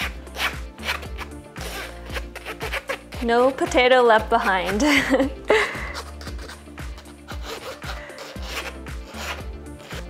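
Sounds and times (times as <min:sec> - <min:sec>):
background music with bass: 0:00.0 - 0:10.0
spatula scraping metal sieve: 0:05.9 - 0:10.0.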